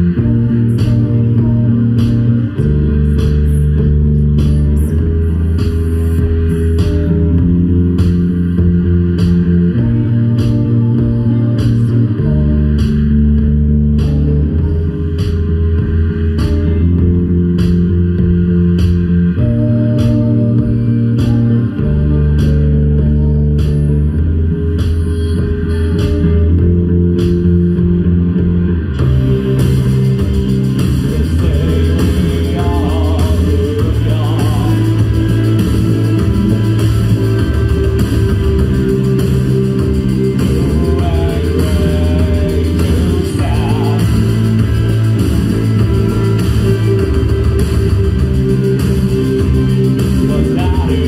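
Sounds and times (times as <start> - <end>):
bass line: 0.0 - 51.0
keyboards: 0.0 - 51.0.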